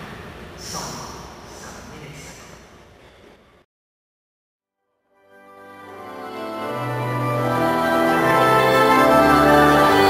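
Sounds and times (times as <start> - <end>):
room noise: 0.0 - 3.7.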